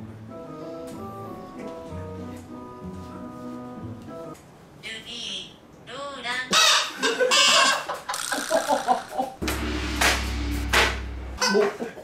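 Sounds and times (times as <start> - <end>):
people laughing: 7.0 - 9.4.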